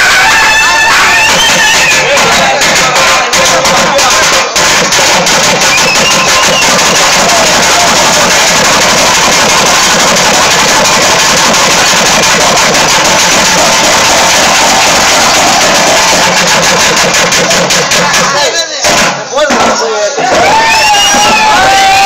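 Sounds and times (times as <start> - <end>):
barrel drums beating fast: 0.0 - 22.0.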